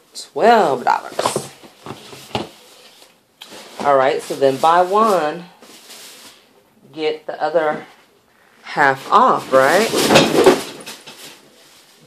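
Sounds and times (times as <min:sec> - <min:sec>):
cardboard box knocked about: 0:09.8 - 0:11.2.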